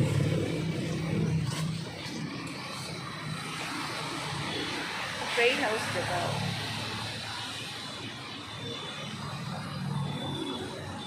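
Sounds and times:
vehicle engine humming: 0.0 - 7.5
traffic: 0.0 - 11.0.

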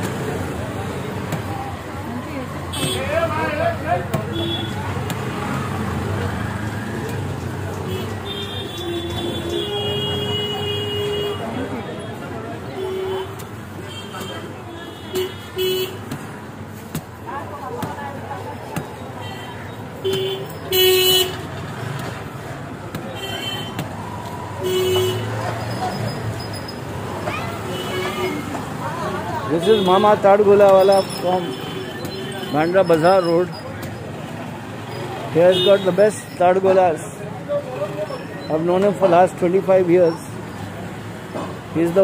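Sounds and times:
low rumble of street traffic: 0.0 - 42.0
road noise hum: 0.0 - 42.0
vehicle horns honking: 2.7 - 3.3, 4.2 - 4.8, 7.9 - 12.1, 12.7 - 16.1, 19.2 - 21.5, 23.2 - 23.8, 24.6 - 25.4, 29.5 - 33.2, 35.4 - 36.2.

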